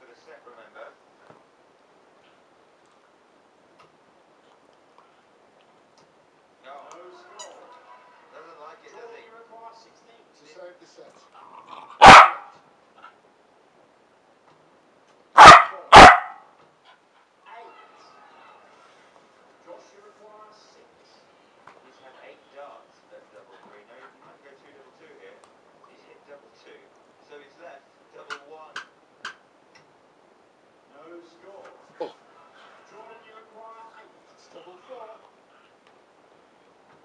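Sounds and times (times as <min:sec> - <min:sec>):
faint background speech: 0:06.6 - 0:11.8, 0:17.4 - 0:28.9
dog barking: 0:12.0 - 0:12.6, 0:15.4 - 0:16.5.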